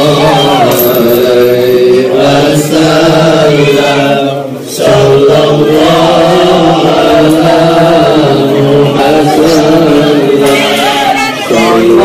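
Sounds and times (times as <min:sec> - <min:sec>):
men chanting together: 0:00.0 - 0:12.0.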